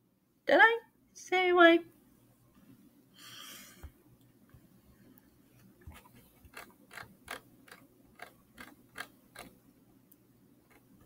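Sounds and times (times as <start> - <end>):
mouse scroll wheel ticking: 6.5 - 9.6.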